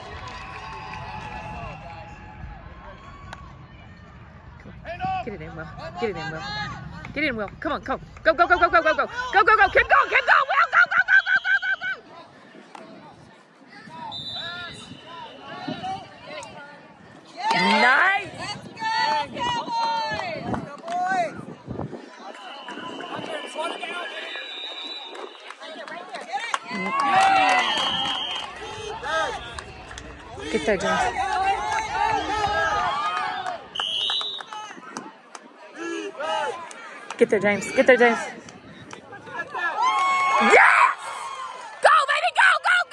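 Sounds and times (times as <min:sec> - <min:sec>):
referee's whistle blast: 0:14.0 - 0:15.6, 0:22.4 - 0:25.5, 0:27.5 - 0:28.5, 0:33.8 - 0:34.6
distant voices chattering: 0:20.4 - 0:39.6.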